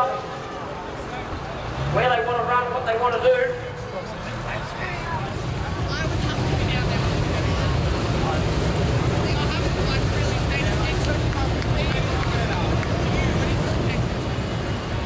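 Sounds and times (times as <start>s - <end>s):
distant voices: 0.0s - 15.0s
idling vehicle engines rumbling: 0.0s - 15.0s.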